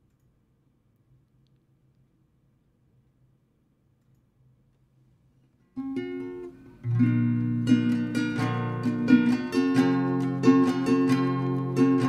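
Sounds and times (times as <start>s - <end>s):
acoustic guitar strumming chords: 5.8s - 12.0s.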